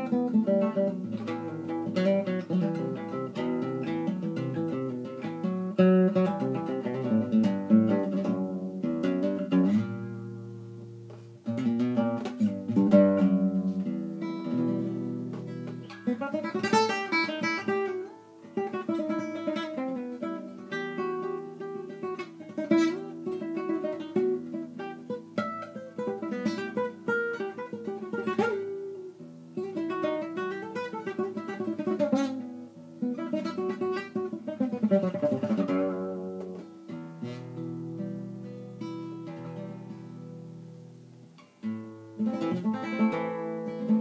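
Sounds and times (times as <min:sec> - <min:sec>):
acoustic guitar melody: 0:00.0 - 0:44.0.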